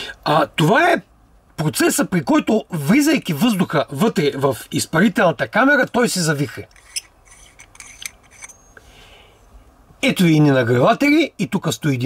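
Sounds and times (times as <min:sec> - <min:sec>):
small metal parts clicking and scraping: 0:06.7 - 0:08.8.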